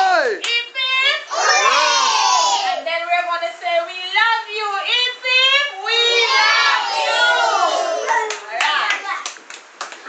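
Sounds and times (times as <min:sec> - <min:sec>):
hand clapping: 0:08.1 - 0:10.0.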